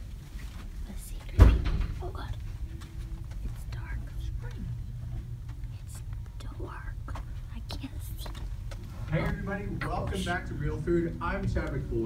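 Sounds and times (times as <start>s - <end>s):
low room rumble: 0.0s - 12.0s
hushed whispering: 0.8s - 2.5s, 3.4s - 8.4s.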